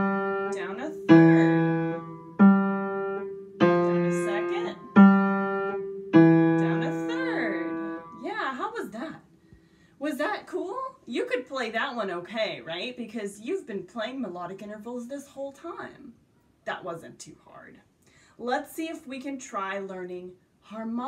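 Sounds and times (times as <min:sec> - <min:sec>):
piano single notes: 0:00.0 - 0:08.3
woman speaking softly: 0:00.5 - 0:01.7, 0:04.1 - 0:04.8, 0:06.6 - 0:09.2.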